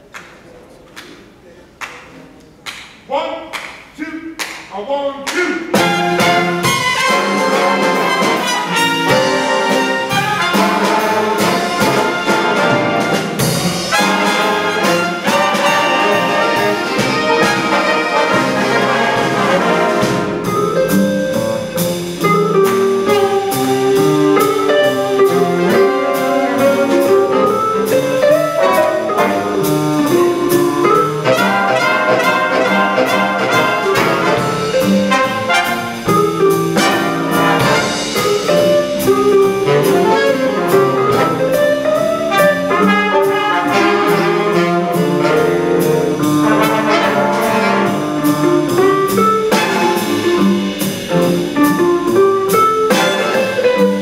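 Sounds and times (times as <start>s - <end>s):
big band playing jazz: 0.0s - 54.0s.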